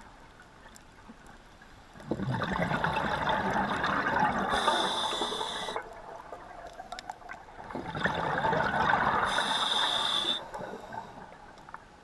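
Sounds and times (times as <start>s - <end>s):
rush of regulator bubbles: 2.1s - 6.6s, 7.5s - 10.7s
high hiss: 4.6s - 5.8s, 9.3s - 10.5s.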